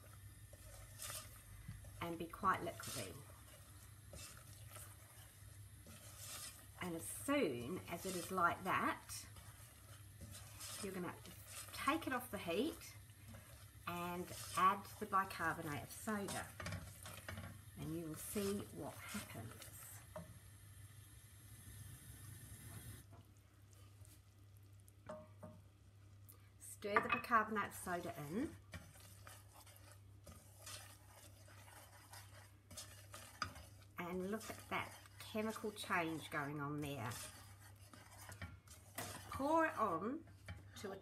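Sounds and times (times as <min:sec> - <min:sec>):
soft scrapes: 0:00.0 - 0:20.4, 0:27.6 - 0:40.9
soft hiss: 0:00.0 - 0:40.9
bubbling melted sugar: 0:00.0 - 0:41.0
wooden spoon stirring in saucepan: 0:00.0 - 0:41.0.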